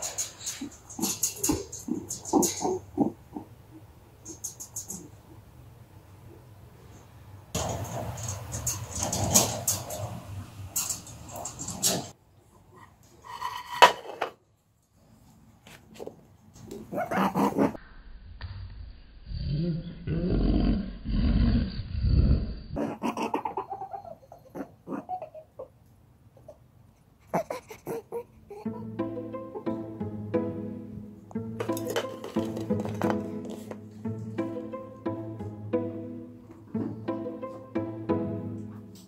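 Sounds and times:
rabbit grunting: 0.0 - 5.3, 16.7 - 17.8, 20.0 - 25.7, 36.5 - 37.1
rustling handling noises: 31.6 - 34.0.

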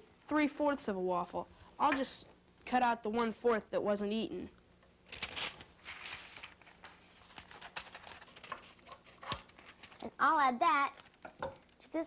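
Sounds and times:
paper rustling: 5.1 - 10.1.

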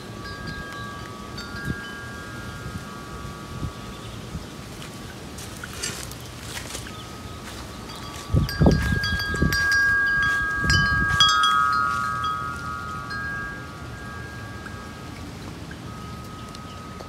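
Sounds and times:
wind chime ringing: 0.0 - 4.3, 6.8 - 17.0
wind gusts on microphone: 0.0 - 17.0.

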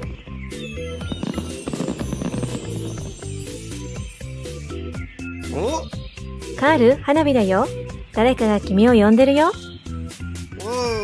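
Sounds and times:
cheerful background music: 0.0 - 11.0
firework whistling and crackling: 0.4 - 4.9.

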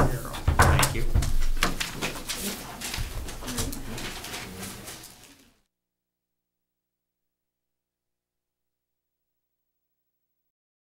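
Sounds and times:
small knocks: 0.0 - 2.1
papers rustling: 0.0 - 5.6
shuffling: 0.0 - 5.6.

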